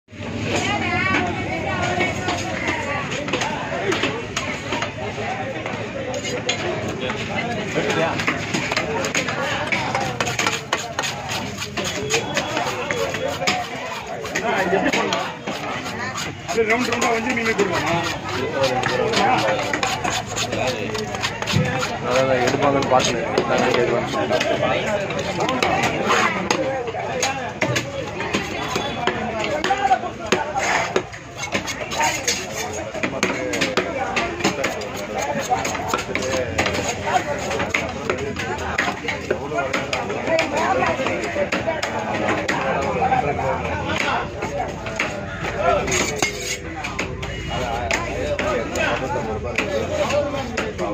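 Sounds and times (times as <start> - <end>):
people talking: 0.2 - 50.9
knife scraping fish scales: 9.1 - 23.1, 25.9 - 26.5, 30.4 - 37.8, 45.8 - 46.7.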